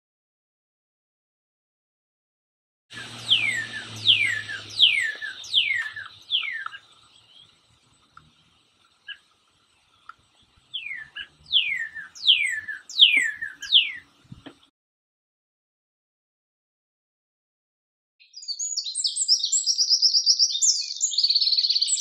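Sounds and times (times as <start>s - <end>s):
cardinal whistling song: 2.9s - 7.6s, 10.1s - 14.2s, 18.2s - 22.0s.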